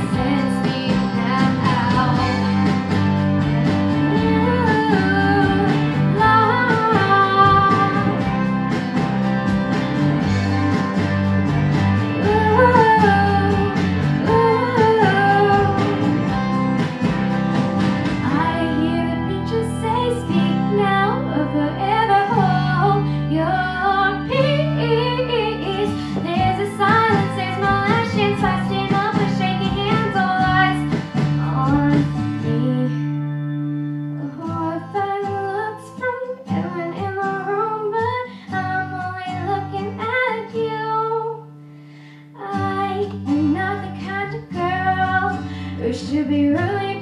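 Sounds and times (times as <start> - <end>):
girl singing into a microphone: 0.0 - 2.6, 4.0 - 8.5, 12.1 - 16.4, 18.2 - 33.2, 34.1 - 47.0
instrumental accompaniment: 0.0 - 37.6.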